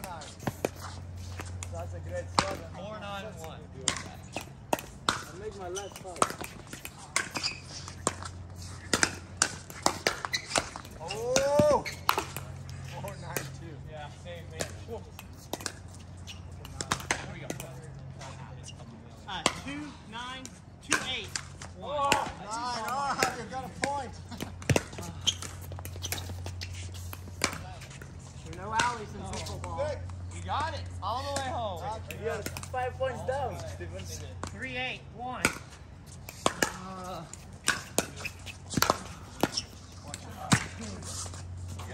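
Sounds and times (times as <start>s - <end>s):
paddles striking pickleball: 0.0s - 18.4s, 19.3s - 30.4s, 31.0s - 34.8s, 35.4s - 41.9s.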